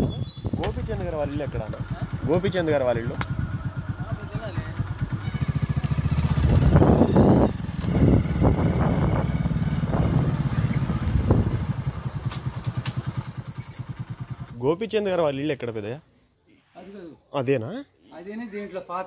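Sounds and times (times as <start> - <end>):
motorcycle engine running: 0.0 - 14.6.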